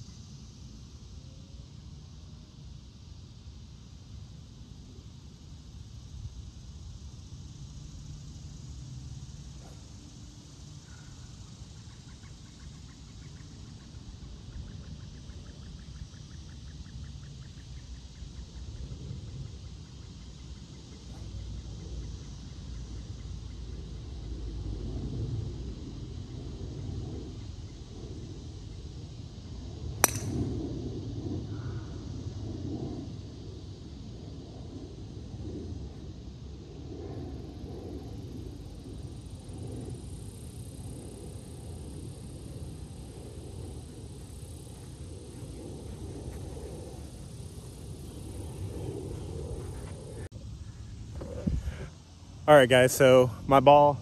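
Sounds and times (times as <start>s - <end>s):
low outdoor background noise: 0.0s - 54.0s
golf club striking ball: 30.0s - 30.5s.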